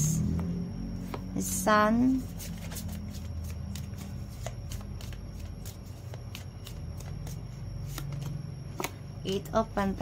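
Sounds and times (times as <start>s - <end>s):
cards being shuffled by hand: 2.0s - 9.0s.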